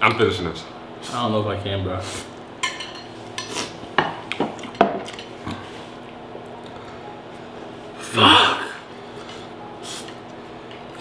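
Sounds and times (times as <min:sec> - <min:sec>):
low room hum: 0:00.0 - 0:11.0
tableware knocking and clinking: 0:04.0 - 0:05.3.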